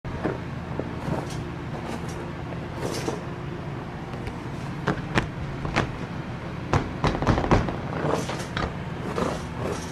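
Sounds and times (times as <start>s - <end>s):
low mechanical hum: 0.1s - 9.9s.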